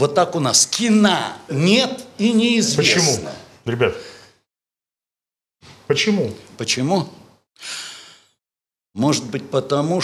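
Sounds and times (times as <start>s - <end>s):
man breathing into microphone: 7.6s - 8.4s.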